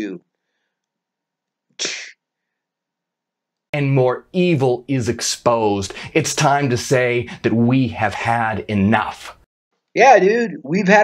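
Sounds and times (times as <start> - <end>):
man sneezing: 1.8 - 2.2.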